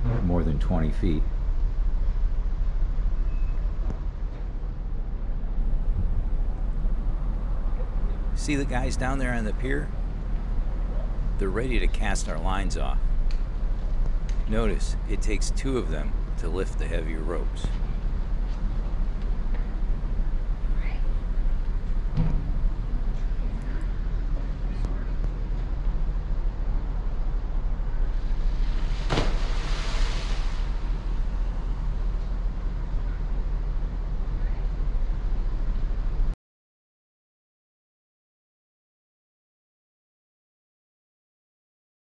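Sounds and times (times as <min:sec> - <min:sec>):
low ship rumble: 0:00.0 - 0:36.4.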